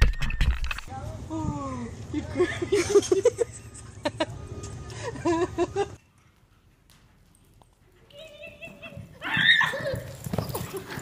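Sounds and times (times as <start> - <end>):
hooves thudding on sand: 6.2 - 11.0
pony crying out: 9.2 - 10.2.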